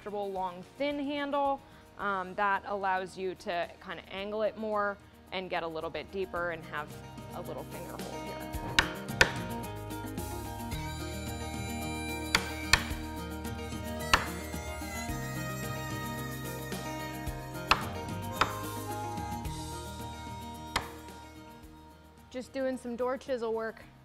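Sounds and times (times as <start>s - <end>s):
background music: 0.0s - 24.0s
mallet striking wood chisel: 8.6s - 9.6s, 12.1s - 13.1s, 14.1s - 14.6s, 17.6s - 18.8s, 20.7s - 21.2s.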